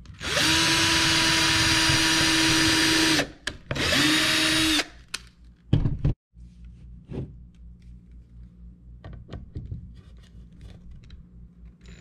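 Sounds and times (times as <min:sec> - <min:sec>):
cordless drill boring into wood: 0:00.2 - 0:04.9.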